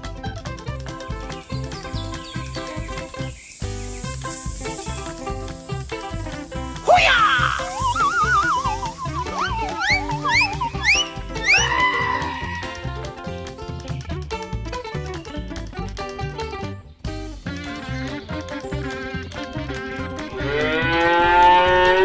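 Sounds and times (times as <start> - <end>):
background music: 0.0 - 22.0
quick rising glides: 1.3 - 13.0
wavering tone: 6.8 - 12.8.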